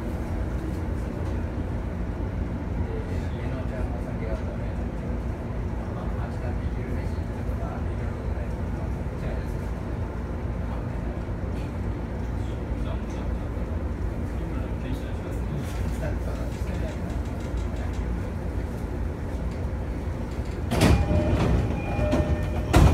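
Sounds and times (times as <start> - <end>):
train rumble inside passenger car: 0.0 - 22.9.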